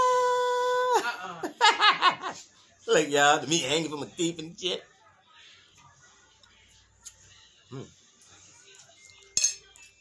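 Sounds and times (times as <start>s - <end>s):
cutlery clinking on a plate: 9.0s - 10.0s.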